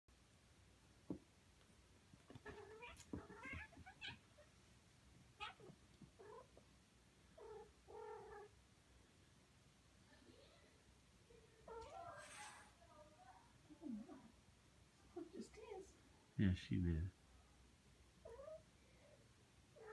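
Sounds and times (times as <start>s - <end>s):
toy and cloth rustling: 2.2s - 4.5s.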